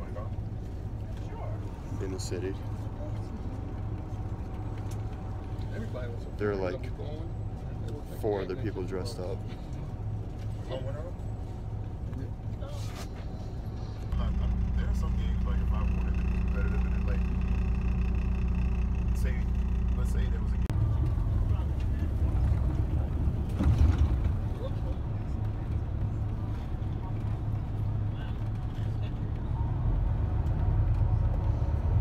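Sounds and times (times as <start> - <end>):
bus engine and road drone: 0.0 - 32.0.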